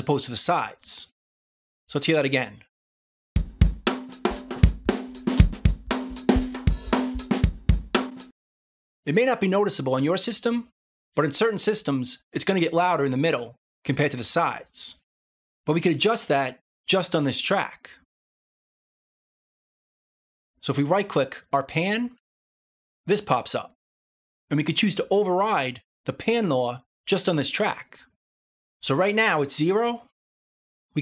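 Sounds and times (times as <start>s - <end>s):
drum loop panning: 3.4s - 8.3s.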